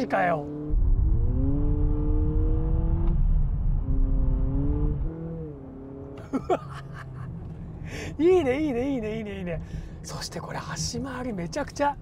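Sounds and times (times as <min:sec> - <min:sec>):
car engine revving from inside cabin: 0:00.5 - 0:06.0.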